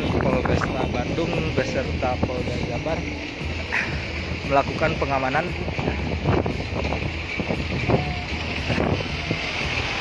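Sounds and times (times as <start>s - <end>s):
wind on microphone: 4.8s - 10.0s.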